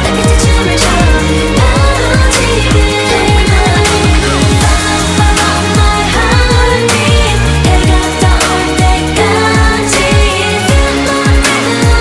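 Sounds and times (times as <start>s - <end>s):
electronic dance-pop song: 0.0s - 12.0s
female sung vocals: 0.0s - 12.0s
layered synths: 0.0s - 12.0s.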